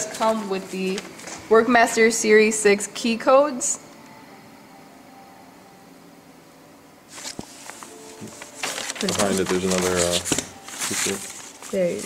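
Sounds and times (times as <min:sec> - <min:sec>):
paper rustling: 0:07.1 - 0:12.0.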